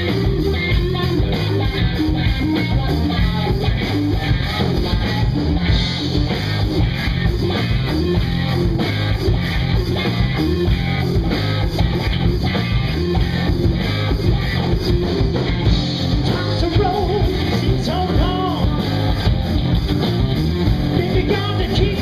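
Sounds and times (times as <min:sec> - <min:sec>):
drum kit: 0:00.0 - 0:22.0
electric bass: 0:00.0 - 0:22.0
electric guitar: 0:00.0 - 0:22.0.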